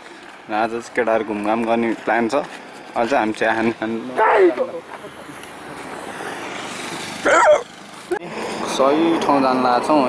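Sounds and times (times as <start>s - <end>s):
moving vehicle road noise: 0.0s - 10.0s
person speaking: 3.0s - 5.4s.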